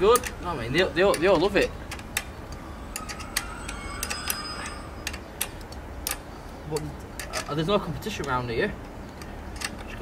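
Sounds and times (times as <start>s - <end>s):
faint thin ringing: 2.8s - 5.3s.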